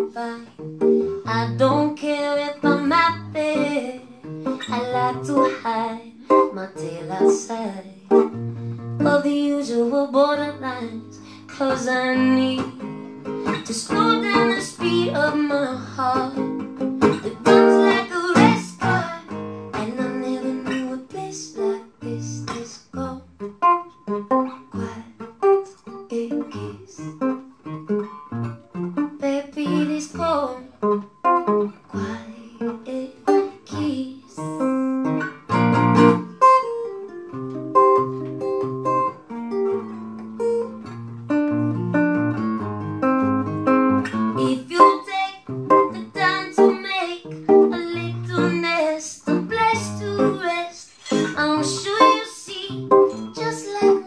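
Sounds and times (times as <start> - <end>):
woman singing: 0.0 - 8.4, 9.0 - 23.5, 24.5 - 27.2, 29.1 - 30.9, 31.7 - 35.2, 44.3 - 54.0
strummed acoustic guitar: 0.0 - 54.0.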